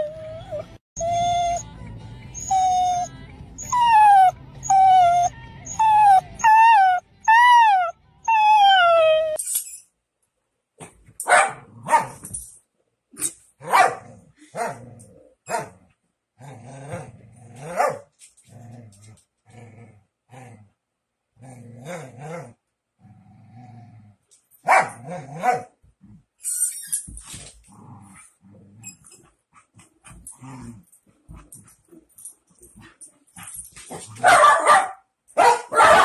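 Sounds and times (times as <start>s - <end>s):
dog barking: 11.2s - 12.2s, 13.6s - 14.8s, 15.5s - 15.8s, 17.7s - 18.1s, 24.6s - 25.8s, 34.2s - 36.0s
dog growling: 21.4s - 24.2s, 27.7s - 28.8s.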